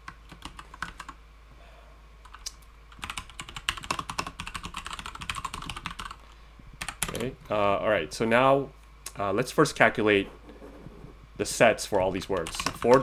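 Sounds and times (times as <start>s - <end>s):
computer keyboard typing: 0.0s - 1.2s, 2.2s - 6.2s, 6.8s - 7.3s, 12.2s - 13.0s.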